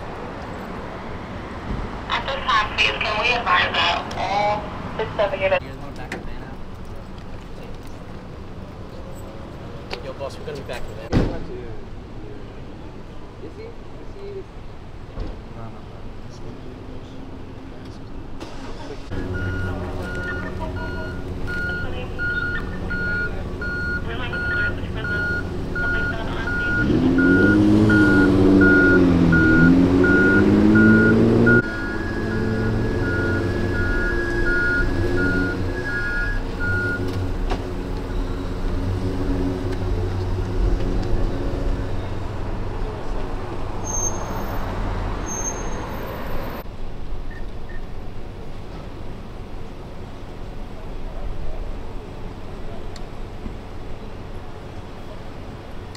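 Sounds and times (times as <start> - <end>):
reversing alarm beeping: 19.2 - 37.1.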